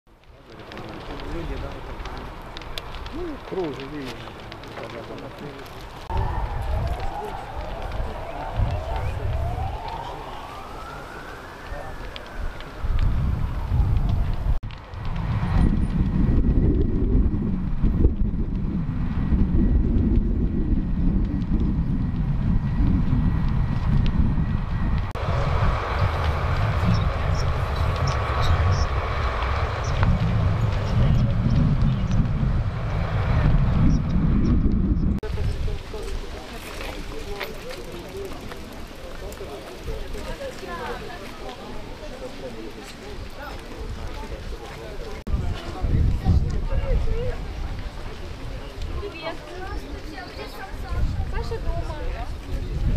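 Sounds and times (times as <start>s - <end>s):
loud low churning rumble: 0.5s - 36.4s
emergency siren wailing: 4.6s - 14.6s, 21.6s - 35.0s.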